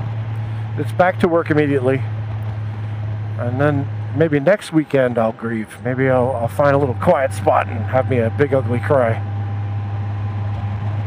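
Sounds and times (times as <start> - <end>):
wind and road rush: 0.0 - 4.5, 6.6 - 11.0
motorcycle engine hum: 0.0 - 11.0.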